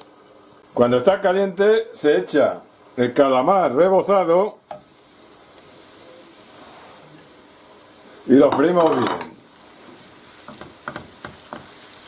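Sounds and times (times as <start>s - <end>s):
squid sizzling in hot oil: 0.0s - 12.0s.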